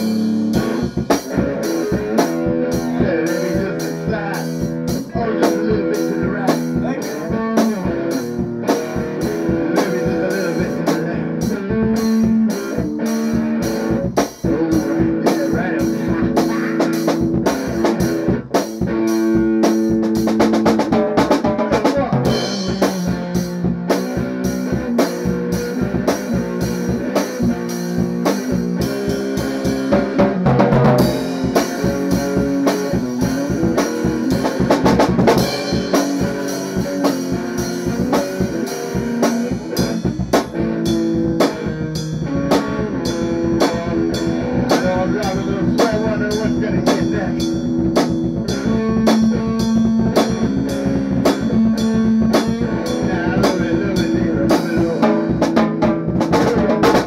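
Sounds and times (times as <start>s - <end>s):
rock guitar playing: 0.0s - 57.0s
steady drum beat: 0.0s - 57.0s.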